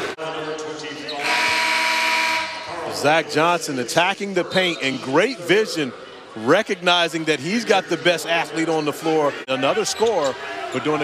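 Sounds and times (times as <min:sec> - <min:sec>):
basketball arena noise: 0:00.0 - 0:11.0.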